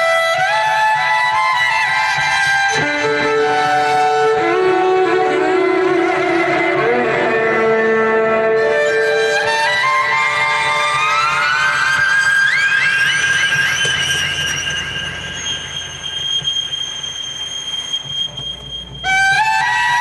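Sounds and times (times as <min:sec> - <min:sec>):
amplified solo violin: 0:00.0 - 0:20.0.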